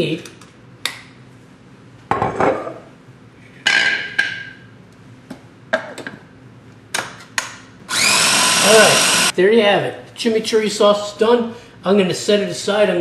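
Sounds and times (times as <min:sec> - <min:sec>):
food processor motor: 0:07.9 - 0:09.3.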